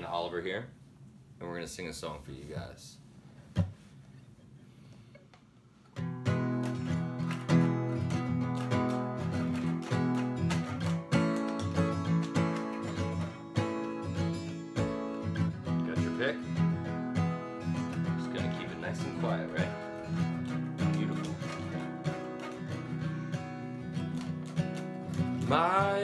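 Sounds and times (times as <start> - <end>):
acoustic guitar strummed chords: 6.0 - 26.0.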